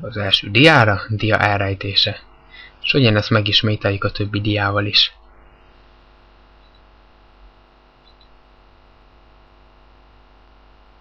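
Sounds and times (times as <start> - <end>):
electrical mains hum: 0.0 - 11.0
soft hiss: 0.0 - 11.0.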